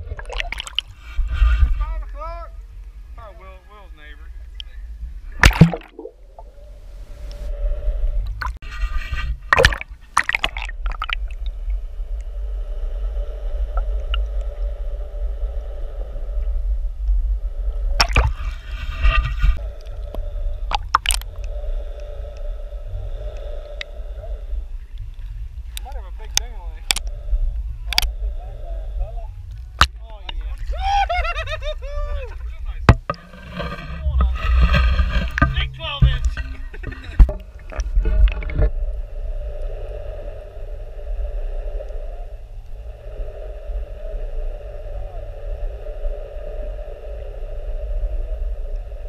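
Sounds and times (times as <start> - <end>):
deep underwater rumble: 0.0 - 49.0
droning hum: 0.0 - 49.0
sharp knocks: 35.2 - 37.4.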